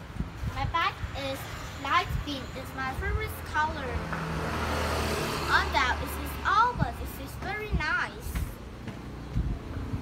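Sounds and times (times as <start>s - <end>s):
vehicle passing: 0.9s - 10.0s.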